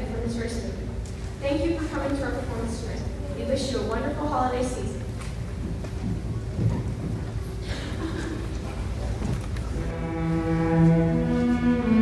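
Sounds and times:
string orchestra playing: 9.8s - 12.0s.

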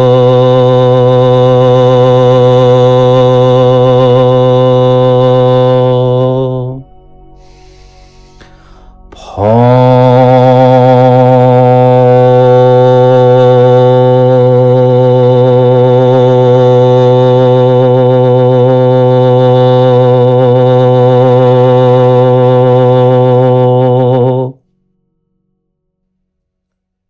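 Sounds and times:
man singing low drone note: 0.0s - 24.6s.

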